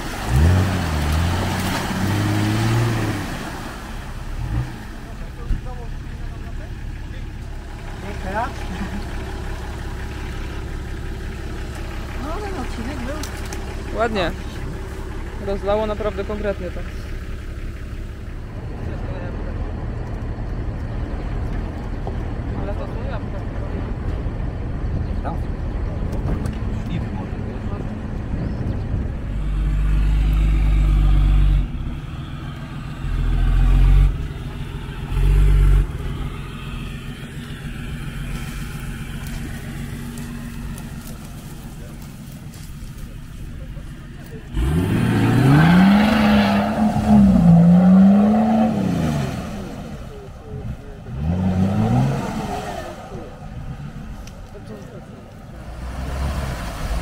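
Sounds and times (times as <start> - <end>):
engine revving: 0.0 - 57.0
off-road vehicle engine drone: 0.0 - 57.0.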